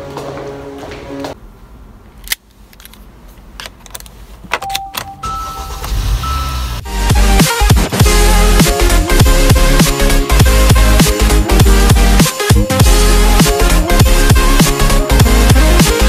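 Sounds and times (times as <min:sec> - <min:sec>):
dashboard chime tones: 0:04.6 - 0:06.8
car engine starting: 0:05.3 - 0:08.1
loud electronic music: 0:05.8 - 0:16.0.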